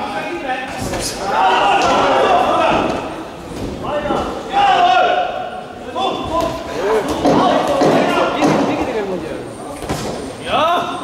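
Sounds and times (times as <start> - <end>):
voices shouting: 1.1 - 8.5.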